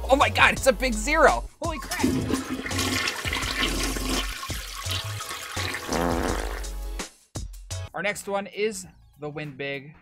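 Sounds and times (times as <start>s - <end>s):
music: 0.0s - 10.0s
toilet flushing: 1.8s - 6.6s.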